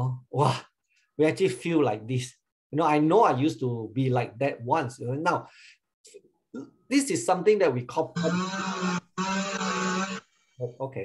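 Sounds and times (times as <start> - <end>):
music-like pitched sound: 8.2 - 10.2.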